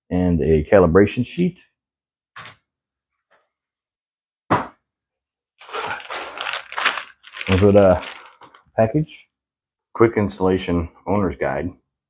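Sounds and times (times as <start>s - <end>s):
plastic packaging crinkling: 5.6s - 8.8s.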